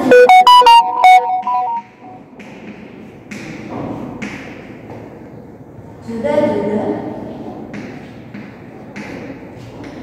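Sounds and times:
electronic synthesizer melody: 0.0 - 2.2.

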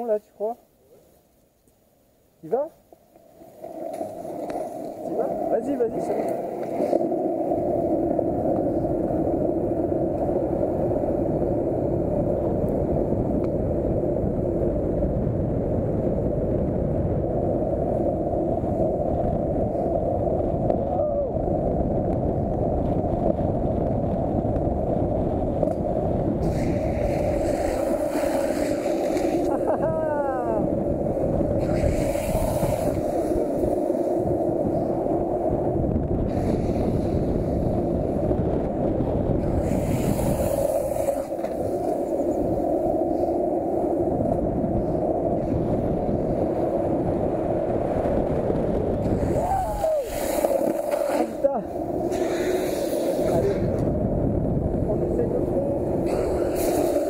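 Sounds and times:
skateboard wheels rolling on asphalt: 1.2 - 57.0.

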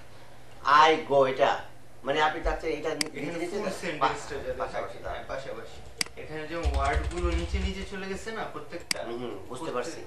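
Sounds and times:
keyboard typing: 5.8 - 8.2.

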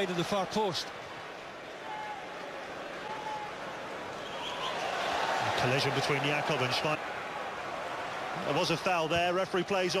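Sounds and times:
football crowd voices: 0.0 - 10.0.

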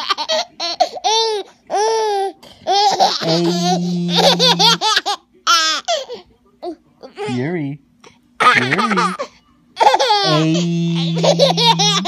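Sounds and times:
baby laughing: 0.0 - 6.2, 8.4 - 12.0
person laughing: 3.2 - 4.9, 8.5 - 9.2, 10.3 - 12.0.

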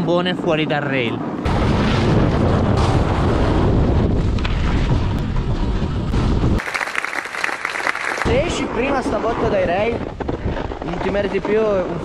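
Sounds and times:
wind buffeting microphone: 1.2 - 6.7, 8.2 - 12.0
applause: 6.6 - 8.3.

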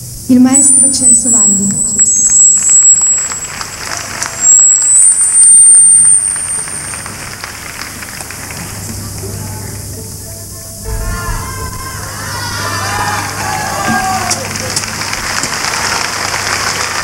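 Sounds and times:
high whistling: 0.3 - 8.4
audience applauding: 2.2 - 10.0, 10.9 - 17.0
crowd murmur: 6.7 - 17.0.

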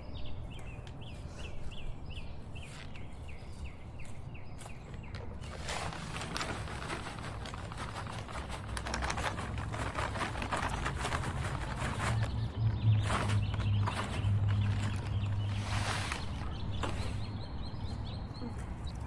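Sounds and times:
granular fertilizer pouring: 5.4 - 17.1.

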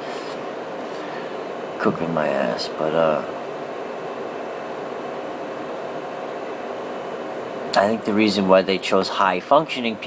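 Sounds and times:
faint hum: 0.0 - 10.0
room background hiss: 0.0 - 10.0.

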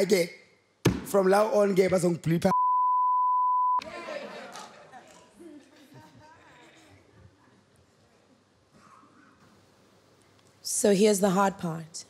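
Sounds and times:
censor bleep: 2.5 - 3.8.

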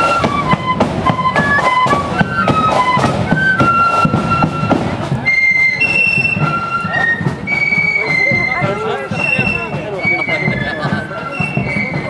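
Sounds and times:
flute band playing: 0.0 - 12.0
steady drum beat: 0.0 - 12.0.

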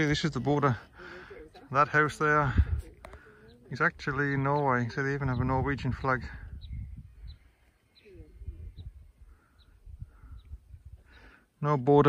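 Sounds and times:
small bird chirping: 3.2 - 11.9.

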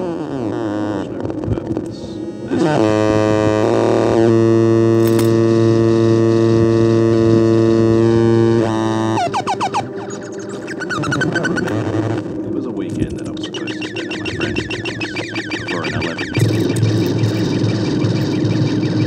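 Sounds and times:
electronic synthesizer music: 0.5 - 19.0.

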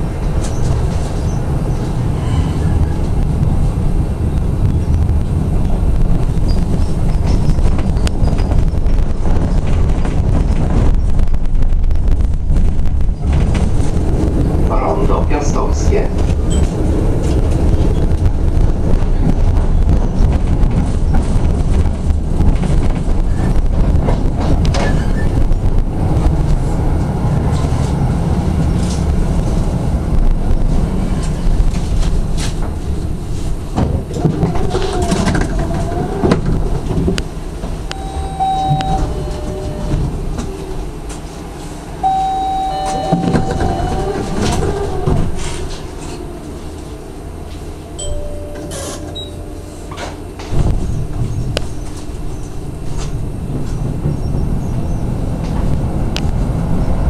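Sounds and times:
tram hum: 0.0 - 57.0
tram wheels rumbling on rails: 0.0 - 57.0
short high tones: 37.9 - 40.0, 42.0 - 44.1, 48.0 - 50.0.

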